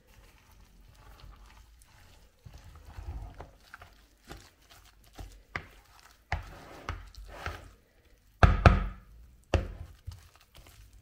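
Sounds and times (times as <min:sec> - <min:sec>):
spoon stirring wet mixture: 0:00.0 - 0:11.0.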